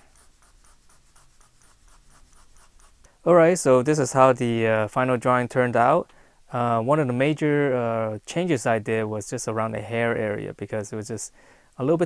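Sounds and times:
pencil shading on paper: 0.0 - 3.1.

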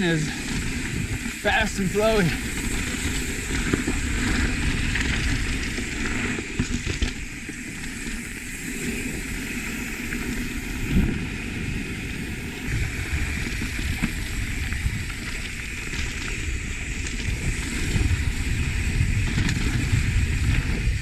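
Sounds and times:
bike tyres rolling on dirt: 0.0 - 21.0
wind buffeting microphone: 0.0 - 21.0.

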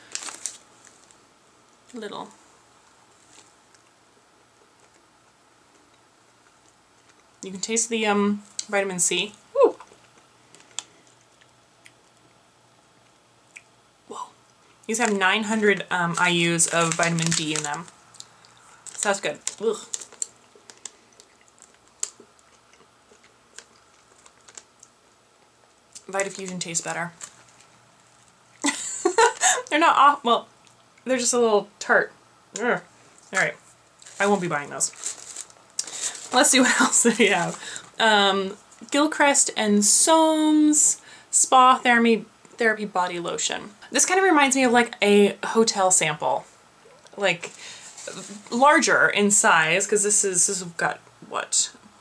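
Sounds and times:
plastic packet crinkling: 0.0 - 1.2, 9.9 - 11.3, 14.9 - 25.0, 25.9 - 29.7, 33.1 - 38.0
mouth clicks and smacks chewing: 20.2 - 25.0.

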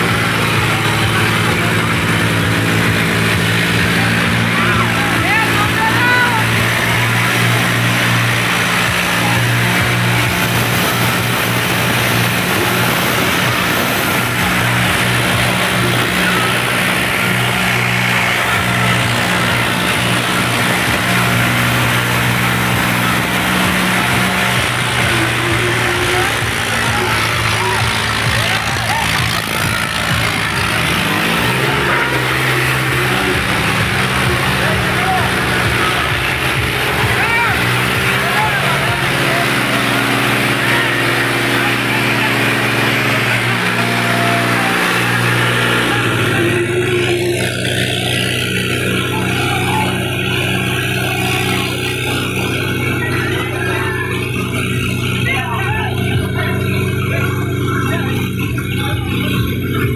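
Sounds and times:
crowd shouting and chattering: 0.0 - 59.9
tractor diesel engine droning: 0.0 - 59.9.

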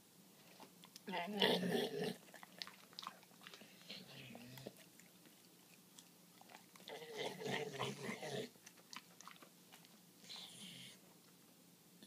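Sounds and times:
dog chewing banana: 2.2 - 10.4.

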